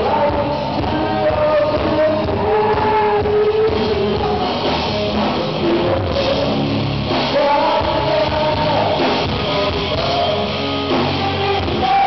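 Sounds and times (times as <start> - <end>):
live rock band playing: 0.0 - 12.0
man singing: 0.0 - 12.0.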